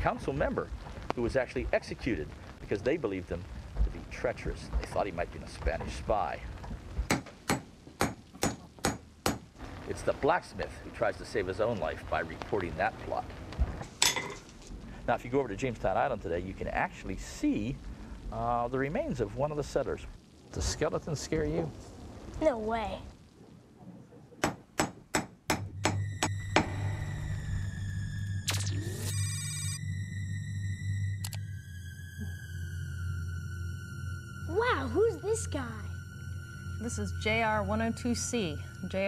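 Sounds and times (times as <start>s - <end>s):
hammer striking metal: 7.1s - 9.4s, 24.4s - 26.7s.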